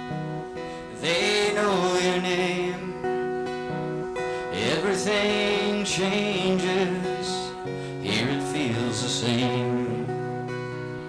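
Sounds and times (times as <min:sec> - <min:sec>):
acoustic guitar strumming: 0:00.0 - 0:11.0
man singing: 0:00.6 - 0:10.7.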